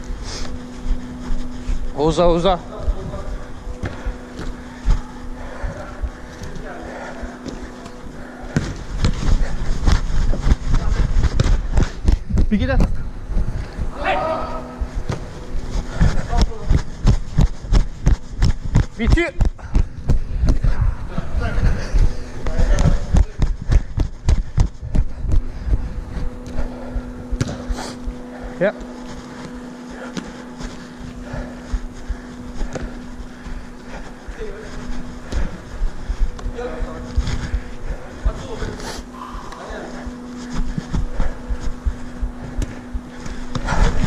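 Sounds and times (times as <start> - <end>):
running footsteps thudding: 0.0 - 44.0
steady low hum: 0.0 - 44.0
players shouting: 13.9 - 14.8.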